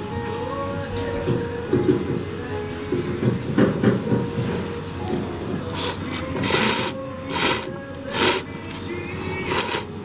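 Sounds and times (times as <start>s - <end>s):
noodles being slurped: 5.7s - 8.5s, 9.4s - 9.9s.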